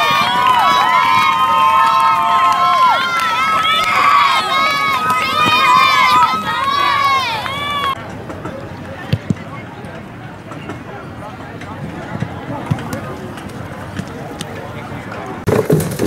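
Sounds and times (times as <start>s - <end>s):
group yelling and whooping: 0.0s - 8.0s.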